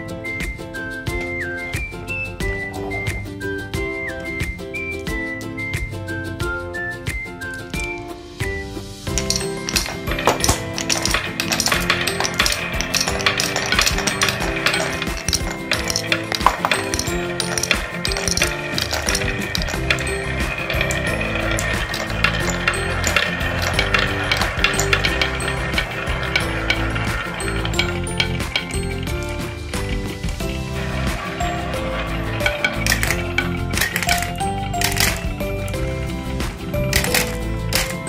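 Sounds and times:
background music: 0.0s - 38.0s
marbles clacking down wooden tracks: 7.4s - 8.0s, 9.1s - 38.0s.

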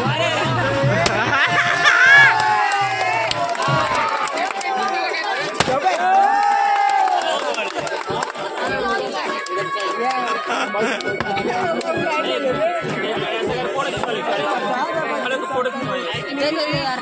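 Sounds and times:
crowd shouting and cheering: 0.0s - 17.0s
sharp crack: 1.0s - 1.4s, 5.5s - 6.0s
whoop: 6.0s - 7.3s.

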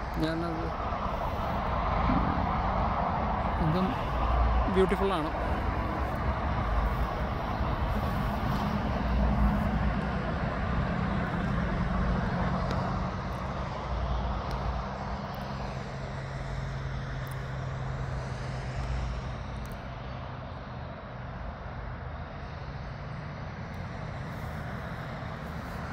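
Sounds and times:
road noise: 0.0s - 25.9s
vehicle engine hum: 0.0s - 25.9s.

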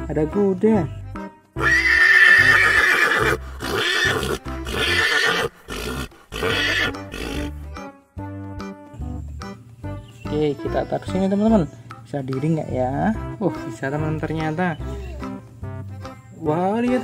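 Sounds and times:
background music: 0.0s - 17.0s
horse whinnying: 1.6s - 7.5s.

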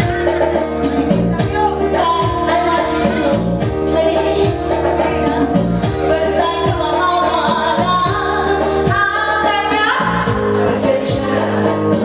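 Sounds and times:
amplified band accompaniment: 0.0s - 12.0s
drums steady beat: 0.0s - 12.0s
woman singing pop song: 1.0s - 12.0s.

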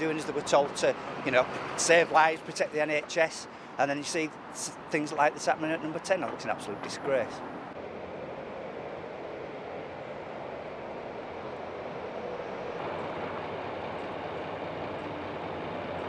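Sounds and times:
city road traffic: 0.0s - 16.0s.

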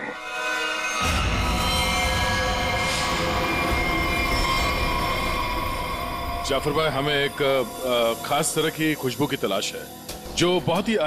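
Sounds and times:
deep rumbling drone: 0.0s - 10.8s
sustained tones: 0.0s - 11.0s.

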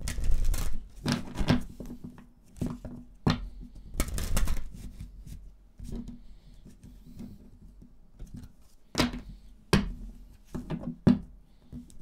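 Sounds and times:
cards being shuffled: 0.0s - 1.9s, 3.9s - 5.1s.

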